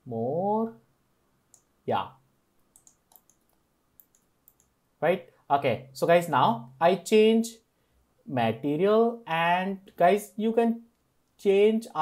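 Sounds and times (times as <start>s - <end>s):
computer mouse clicks: 2.6s - 4.8s.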